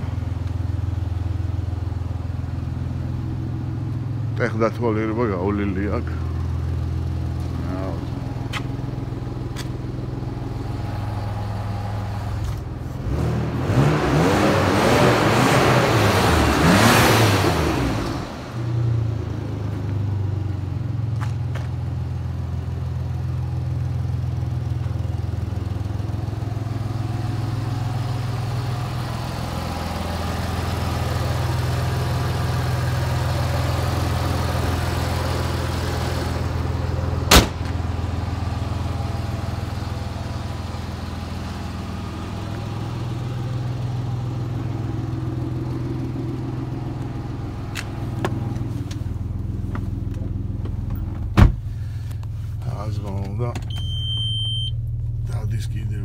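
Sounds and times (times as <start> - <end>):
car engine revving and idling: 0.0 - 56.0.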